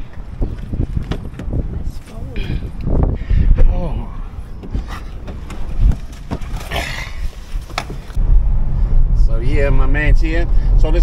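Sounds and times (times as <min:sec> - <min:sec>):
car rumbling on road: 0:00.0 - 0:11.0.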